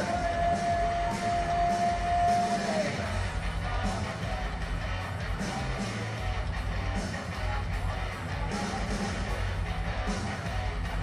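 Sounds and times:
rock backing track: 0:00.0 - 0:11.0.

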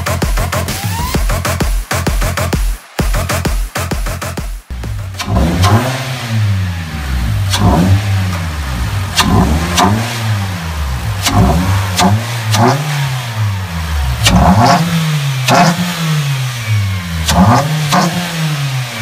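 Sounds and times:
car engine revving: 0:04.7 - 0:19.0.

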